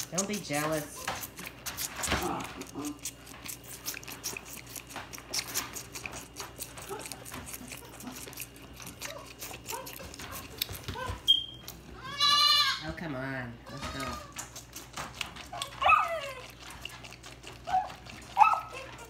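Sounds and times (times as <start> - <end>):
goat kid sucking bottle: 0.0 - 12.6, 13.9 - 19.0
goat bleat: 11.9 - 13.0, 13.6 - 14.5.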